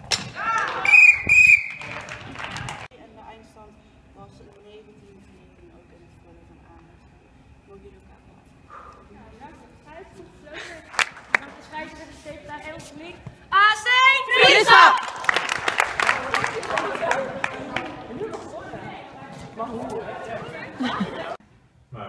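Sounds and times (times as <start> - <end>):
women shouting and cheering: 13.5 - 15.3
busy chatter: 15.9 - 21.4.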